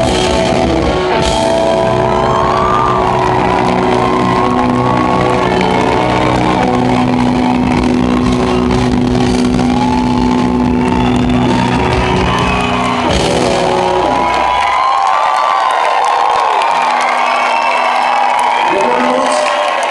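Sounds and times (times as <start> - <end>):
electric guitar chords: 0.0 - 15.1
live rock band: 0.0 - 19.7
audience shouting and cheering: 0.0 - 19.9.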